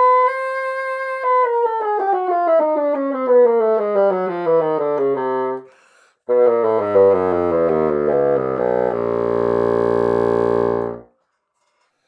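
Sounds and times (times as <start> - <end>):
bassoon playing a descending scale: 0.0 - 5.6, 6.3 - 11.1.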